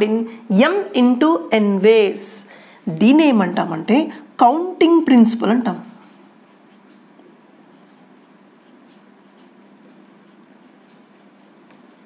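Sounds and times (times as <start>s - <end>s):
marker scratching on whiteboard: 5.9s - 12.0s.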